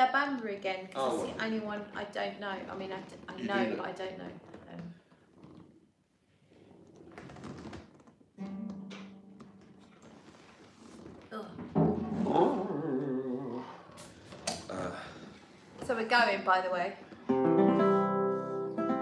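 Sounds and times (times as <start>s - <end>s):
acoustic guitar being handled: 7.5s - 11.0s
guitar strings sounding: 8.4s - 10.5s, 17.3s - 19.0s.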